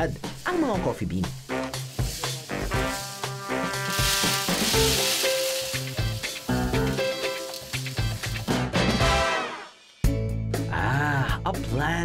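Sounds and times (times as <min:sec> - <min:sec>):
background music: 0:00.0 - 0:12.0
coffee beans pouring with hiss: 0:01.3 - 0:09.2.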